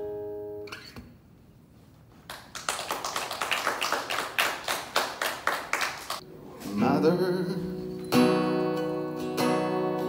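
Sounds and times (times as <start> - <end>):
small audience applauding: 2.3 - 6.2.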